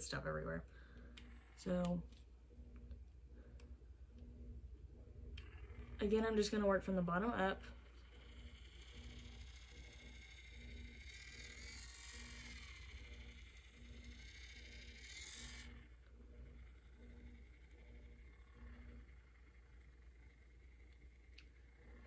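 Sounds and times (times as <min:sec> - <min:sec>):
cleansing brush motor hum: 0:00.0 - 0:22.0.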